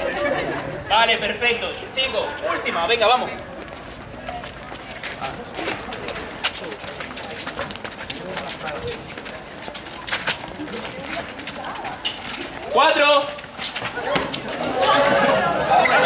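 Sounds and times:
faint background chatter: 0:00.0 - 0:16.0
footsteps jogging on stone: 0:01.1 - 0:16.0.

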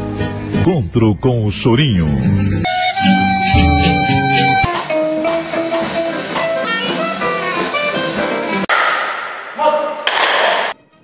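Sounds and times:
live jazz: 0:02.3 - 0:08.7
double bass pizzicato: 0:03.5 - 0:04.7.

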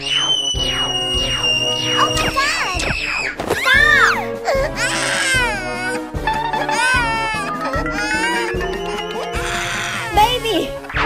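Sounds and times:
background music: 0:00.0 - 0:11.0
child crying: 0:03.6 - 0:10.4.

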